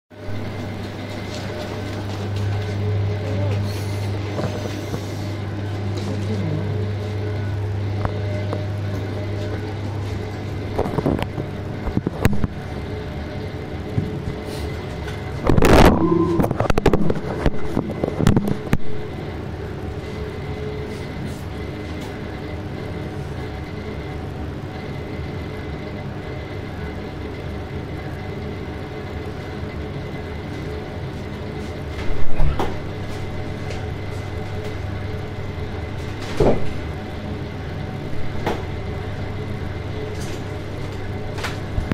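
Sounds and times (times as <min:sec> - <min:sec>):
refrigeration unit hum: 0:00.1 - 0:41.9.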